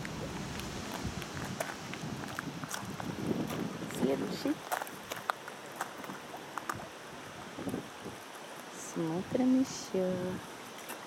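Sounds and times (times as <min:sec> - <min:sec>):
footsteps on gravel: 0:00.0 - 0:06.8
steady background hiss: 0:00.0 - 0:11.0.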